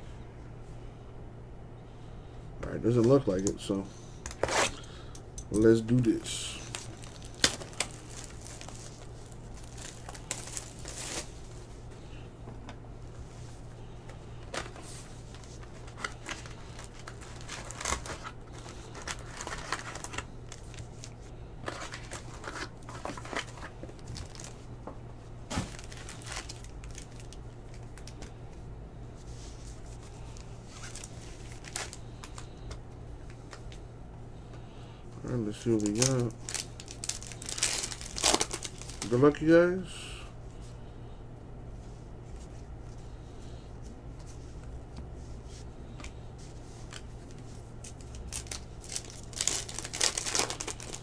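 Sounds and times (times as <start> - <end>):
steady low hum: 0.0 - 51.0
foil packs crinkling: 5.6 - 11.8, 14.4 - 24.7, 25.4 - 28.4, 29.7 - 32.7, 35.3 - 39.5, 46.8 - 51.0
cellophane wrap tearing: 6.5 - 11.4, 14.5 - 24.6, 25.5 - 28.3, 30.4 - 32.5, 35.5 - 39.2, 47.9 - 51.0.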